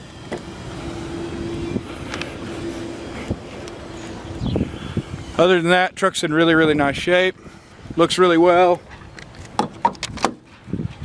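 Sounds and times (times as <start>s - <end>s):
loud rumble: 0.0s - 7.0s
steady mechanical hum: 0.0s - 11.0s
wind on microphone: 0.7s - 8.2s, 10.0s - 11.0s.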